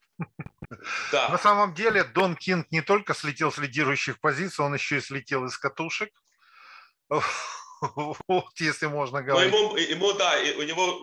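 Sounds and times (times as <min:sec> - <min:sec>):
man laughing over video call: 0:00.0 - 0:02.2, 0:07.1 - 0:08.6.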